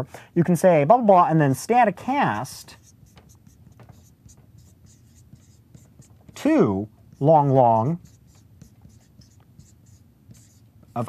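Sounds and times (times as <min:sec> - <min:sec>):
marker scratching on whiteboard: 0:02.5 - 0:11.0.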